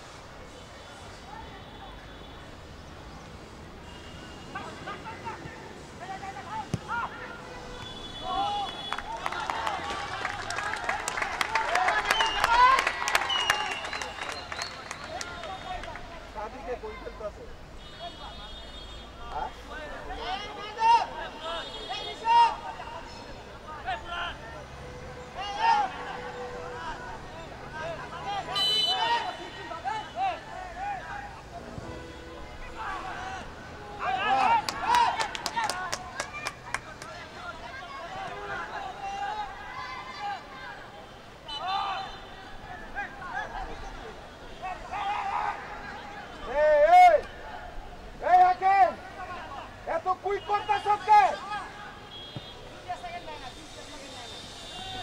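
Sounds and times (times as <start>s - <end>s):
players shouting: 4.6s - 16.1s, 19.2s - 31.8s, 32.6s - 53.5s
people clapping: 8.5s - 16.2s, 34.4s - 37.2s.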